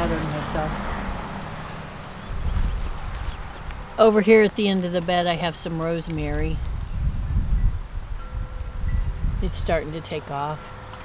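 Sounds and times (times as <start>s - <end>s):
wind rumbling on microphone: 0.0s - 10.6s.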